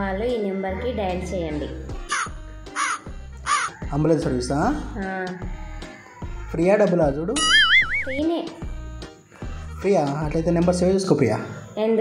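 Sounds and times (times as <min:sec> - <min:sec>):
background music: 0:00.0 - 0:12.0
harsh bird-like call: 0:02.1 - 0:04.4, 0:07.4 - 0:08.2.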